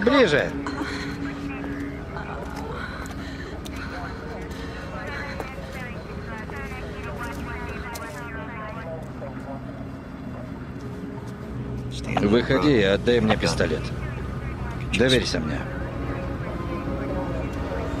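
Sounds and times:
faint voices: 0:00.0 - 0:18.0
low even hum: 0:00.0 - 0:18.0.

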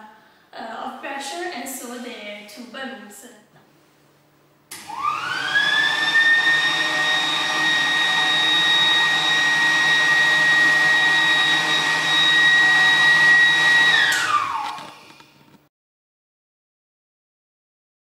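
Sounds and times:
electric air blower whine: 0:04.7 - 0:15.5.

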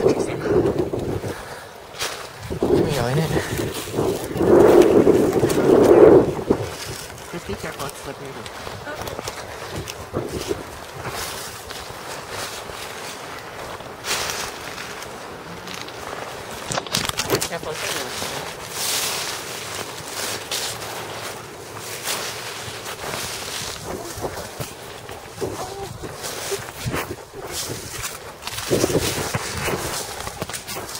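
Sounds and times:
footsteps in dry leaves and twigs: 0:00.0 - 0:30.9
camera handling bumps: 0:16.6 - 0:17.4.

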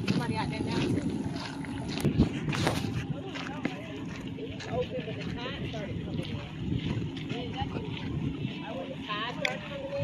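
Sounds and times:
indistinct voices: 0:00.0 - 0:10.0
wind buffeting microphone: 0:00.0 - 0:10.0.

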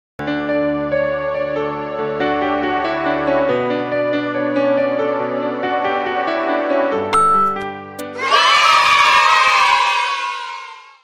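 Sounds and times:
children cheering and shouting: 0:08.0 - 0:11.0.

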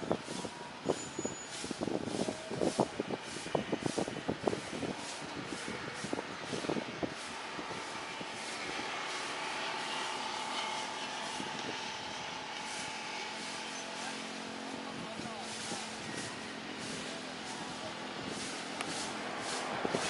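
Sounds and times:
distant jet rush: 0:05.0 - 0:20.0
faint jet whine: 0:07.4 - 0:17.8.

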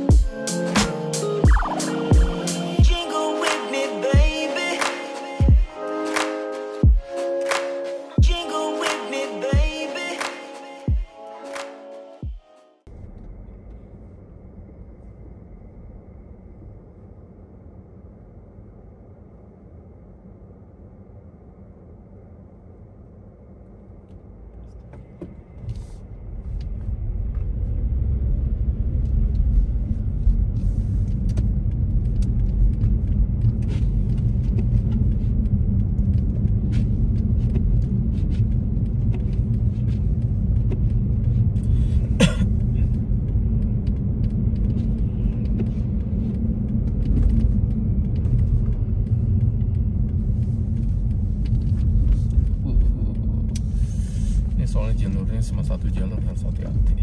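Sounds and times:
car engine and tyre rumble: 0:23.6 - 0:57.0.

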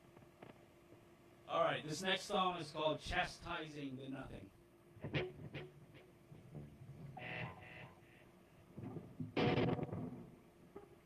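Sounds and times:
distorted electric guitar: 0:05.0 - 0:11.0.

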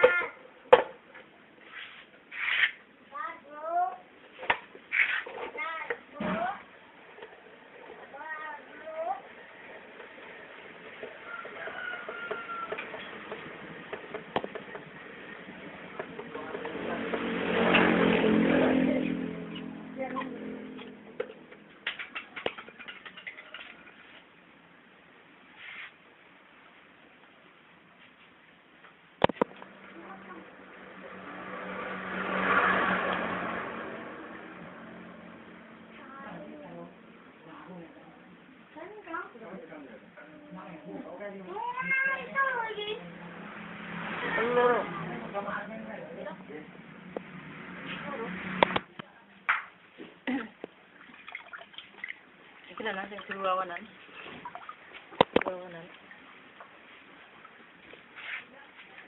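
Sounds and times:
faint background noise: 0:00.0 - 0:59.0
vehicle passing by: 0:06.5 - 0:21.8, 0:29.4 - 0:38.3, 0:42.1 - 0:49.0.

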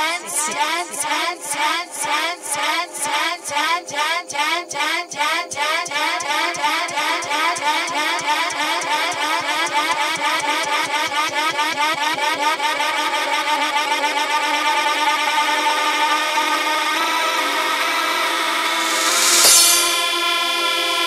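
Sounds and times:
hard trance synth riff: 0:18.4 - 0:20.2.

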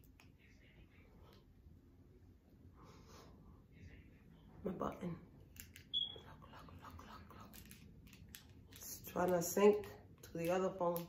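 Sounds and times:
short high beep: 0:05.9 - 0:06.2.

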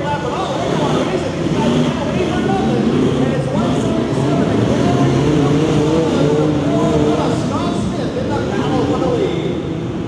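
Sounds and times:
truck engines revving: 0:00.0 - 0:10.0.

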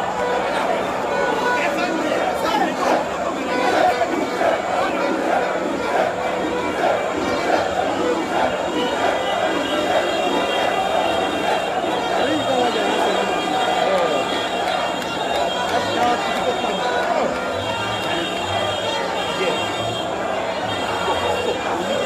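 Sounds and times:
crowd shouting and singing: 0:00.0 - 0:22.0.

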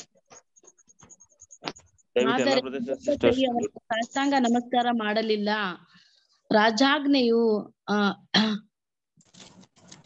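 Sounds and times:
person reading aloud: 0:02.2 - 0:05.8.

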